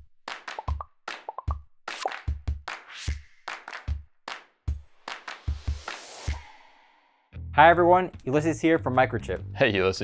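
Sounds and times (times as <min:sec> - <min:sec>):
pop and blip sound effects: 0:00.4 - 0:02.3.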